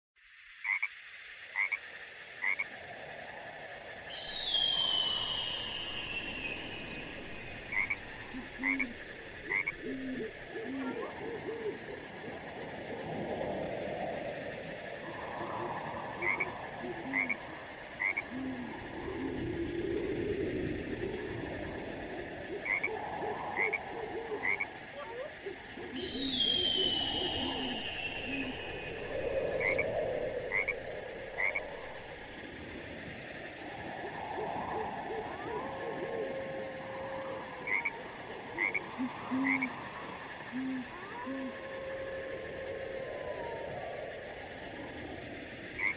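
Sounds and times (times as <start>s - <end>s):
frogs croaking: 0.2s - 45.9s
falling whistled call: 4.1s - 7.2s, 26.0s - 30.0s
steady high-pitched tones: 4.1s - 10.2s, 26.0s - 32.4s
quick high chirps: 6.2s - 7.2s, 28.4s - 29.9s.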